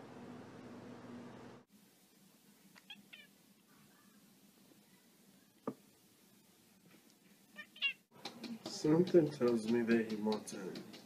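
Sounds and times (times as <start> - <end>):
cat meowing: 2.8 - 3.3, 7.6 - 8.0.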